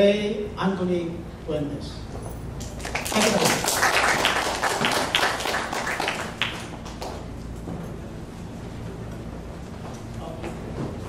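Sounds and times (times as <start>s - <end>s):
audience applauding: 2.6s - 7.3s.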